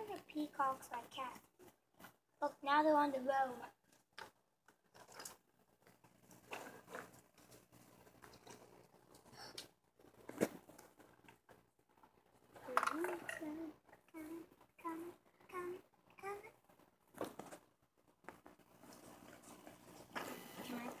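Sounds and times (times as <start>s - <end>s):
rustling and crinkling: 3.6s - 15.5s, 16.4s - 21.0s.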